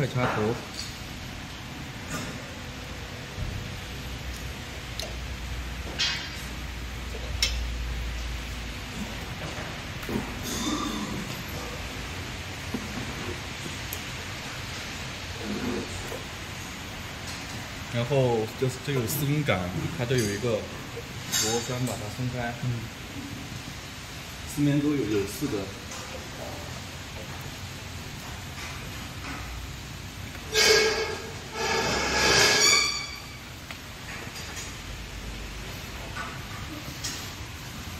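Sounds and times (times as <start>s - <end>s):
factory floor background noise: 0.0s - 37.9s
metal parts scraping with squeal: 30.5s - 33.5s.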